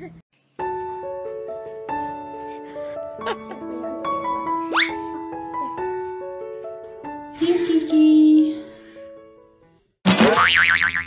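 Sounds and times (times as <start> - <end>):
background music: 0.6 - 10.0
cartoon boing sound effect: 10.1 - 11.0.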